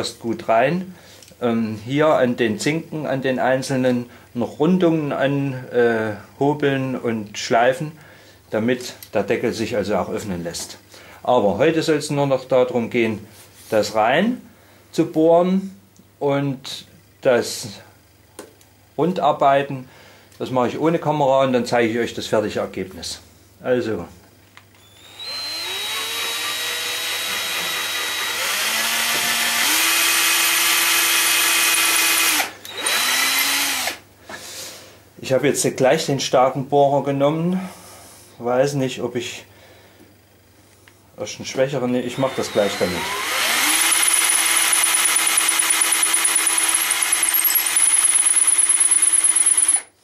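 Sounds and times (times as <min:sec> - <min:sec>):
electric drill boring through wood: 0:24.8 - 0:34.0, 0:42.1 - 0:49.9.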